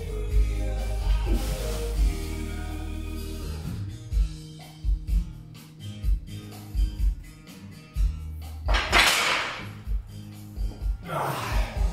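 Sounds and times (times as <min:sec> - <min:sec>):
music with steady bass beat: 0:00.0 - 0:08.7, 0:09.7 - 0:11.9.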